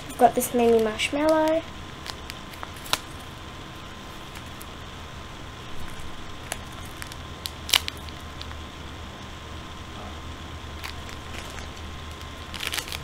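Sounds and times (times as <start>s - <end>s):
background hiss and hum: 0.0s - 13.0s
rustles and clicks of handling: 10.8s - 13.0s.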